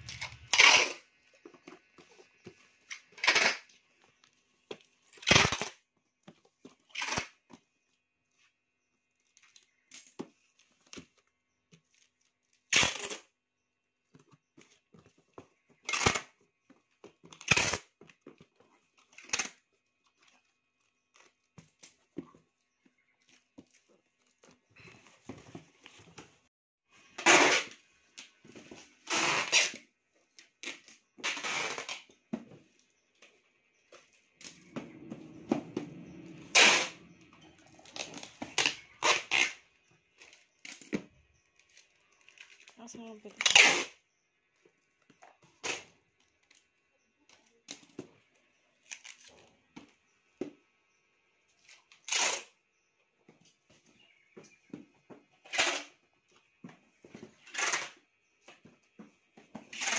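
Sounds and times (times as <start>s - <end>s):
packing tape ripping: 5.2s - 5.8s, 12.7s - 13.3s, 30.6s - 32.0s, 36.5s - 37.0s, 37.9s - 39.6s, 43.4s - 44.0s, 52.0s - 52.5s.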